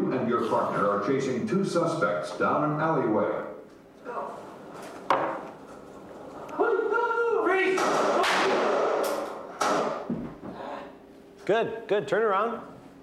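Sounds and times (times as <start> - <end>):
gunshot-like bangs: 7.8 - 10.1.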